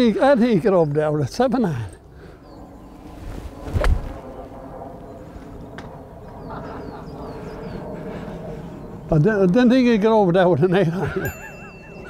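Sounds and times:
low outdoor background: 0.0s - 12.0s.

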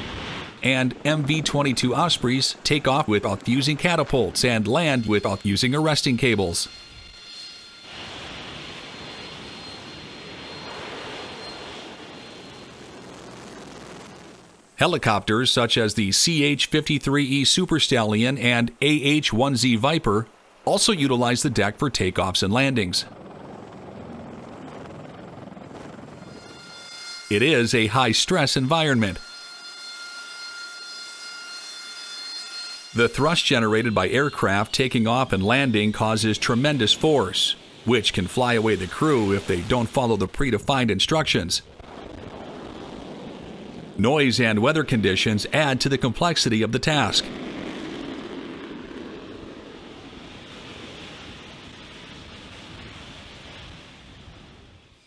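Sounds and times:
helicopter rotors and engines: 0.5s - 15.7s, 20.3s - 29.2s, 33.0s - 52.4s.

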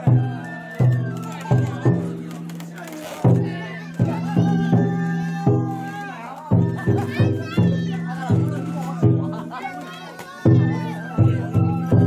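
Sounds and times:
drum and bells beating: 0.0s - 12.0s
children shouting: 3.0s - 12.0s.

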